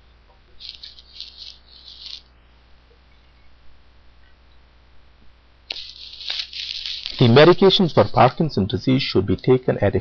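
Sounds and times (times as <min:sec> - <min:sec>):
faint low hum: 0:00.0 - 0:10.0
high rattling noise: 0:00.6 - 0:02.3, 0:05.7 - 0:08.5.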